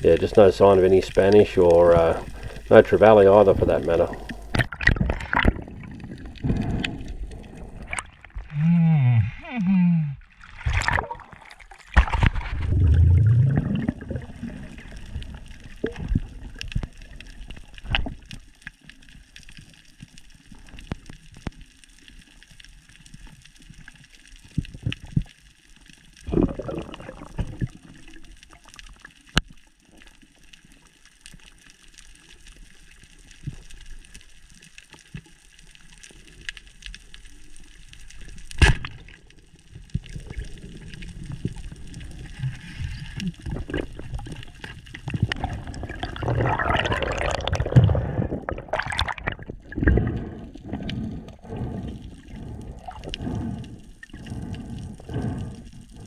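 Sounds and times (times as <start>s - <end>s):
water and bubbles rushing: 0.0s - 9.6s, 10.2s - 31.7s, 32.5s - 56.0s
sharp underwater clicks: 4.0s - 5.6s
bubble bursts: 12.0s - 14.7s, 26.3s - 27.7s, 45.5s - 50.0s
underwater hiss: 49.7s - 56.0s.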